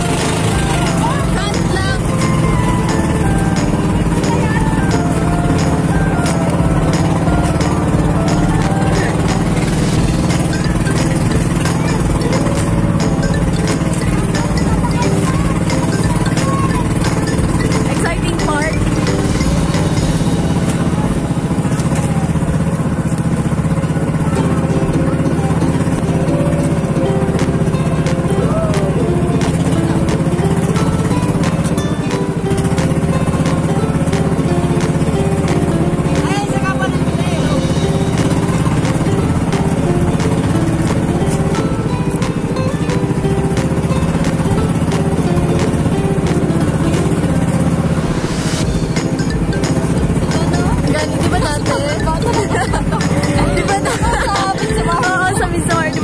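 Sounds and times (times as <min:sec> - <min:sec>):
boat engine droning and clattering: 0:00.0 - 0:56.0.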